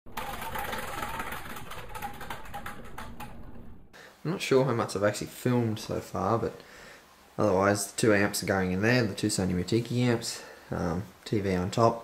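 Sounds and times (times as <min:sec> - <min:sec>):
prize wheel clicking: 0:00.1 - 0:03.5.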